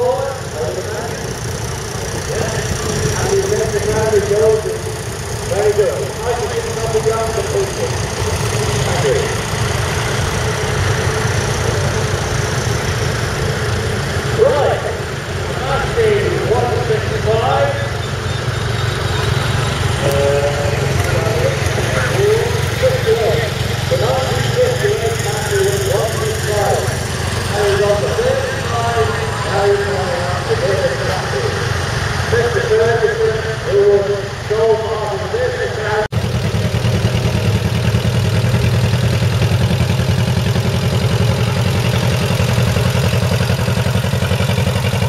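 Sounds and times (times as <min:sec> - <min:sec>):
voices talking: 0:00.0 - 0:12.6, 0:14.2 - 0:36.2
tractor engines running: 0:00.0 - 0:45.0.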